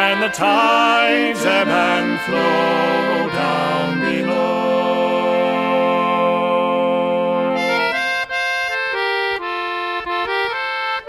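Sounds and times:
accordion folk melody: 0.0s - 11.0s.

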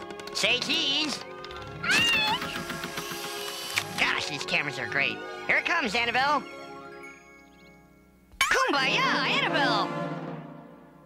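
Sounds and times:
background music with sustained notes: 0.0s - 11.0s.

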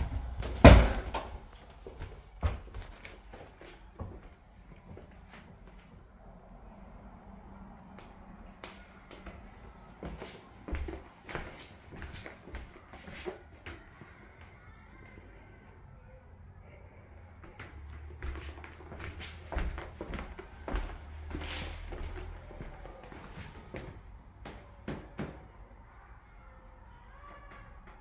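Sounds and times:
footsteps: 0.0s - 6.1s, 8.0s - 15.2s, 17.3s - 24.1s.

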